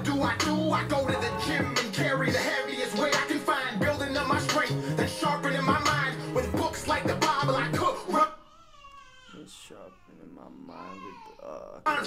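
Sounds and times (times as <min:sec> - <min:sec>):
rapping over a bass beat: 0:00.0 - 0:08.4.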